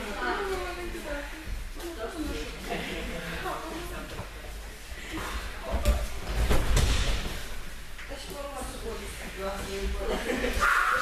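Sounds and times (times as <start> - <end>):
bodies hitting a mat: 5.6 - 7.5.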